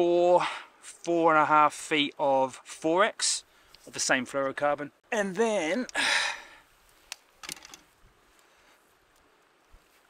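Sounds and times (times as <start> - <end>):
breathy exhale: 6.0 - 6.7.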